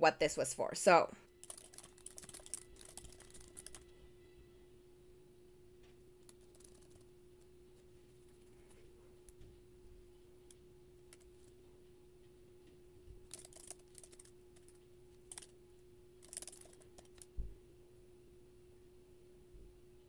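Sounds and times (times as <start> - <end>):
steady low hum: 0.0 - 20.0
typing on computer keyboard: 1.3 - 3.9, 6.2 - 7.0, 13.3 - 15.5, 16.2 - 17.3.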